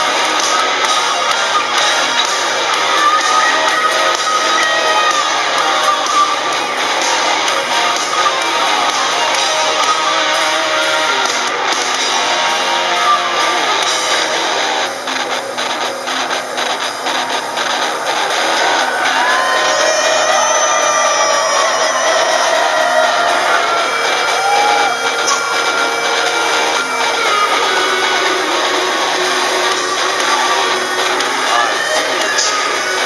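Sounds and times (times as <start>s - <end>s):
bending high guitar notes: 0.0s - 33.0s
distorted heavy metal guitars: 0.0s - 33.0s
electric bass: 0.0s - 33.0s.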